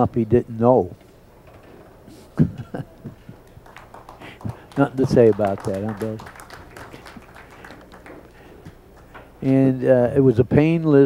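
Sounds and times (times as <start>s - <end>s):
murmur of room noise: 0.0s - 11.0s
billiard balls clicking: 2.8s - 9.6s.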